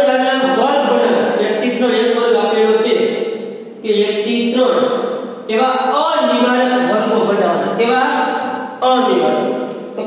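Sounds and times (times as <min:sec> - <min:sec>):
man speaking in sing-song tone: 0:00.0 - 0:03.1, 0:05.5 - 0:09.5.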